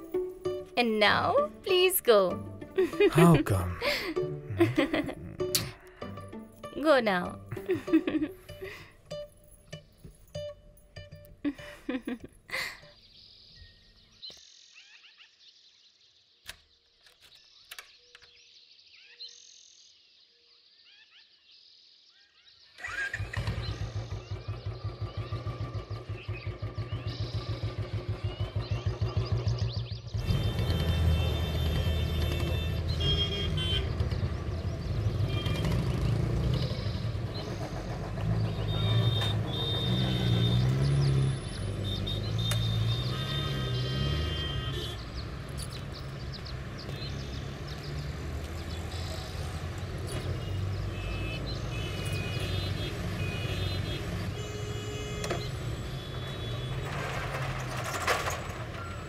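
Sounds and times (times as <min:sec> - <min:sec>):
traffic noise: 0:00.0 - 0:13.0, 0:22.8 - 0:59.0
faint bird chirps: 0:12.8 - 0:22.8
motorcycle engine running: 0:23.1 - 0:40.9.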